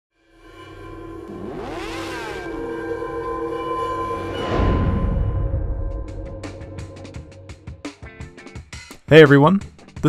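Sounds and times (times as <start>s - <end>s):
chord of held tones: 0.2s - 8.0s.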